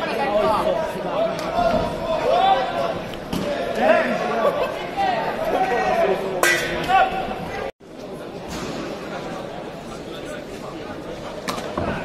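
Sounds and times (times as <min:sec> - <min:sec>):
voices shouting and chattering: 0:00.0 - 0:12.0.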